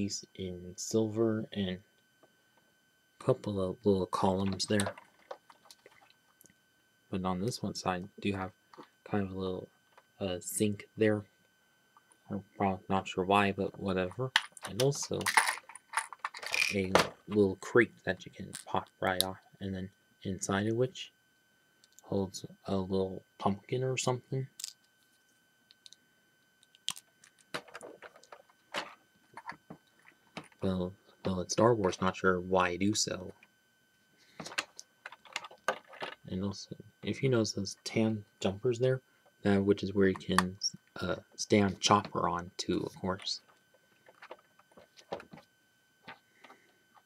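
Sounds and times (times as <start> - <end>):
plastic pieces clicking: 14.4 - 16.8.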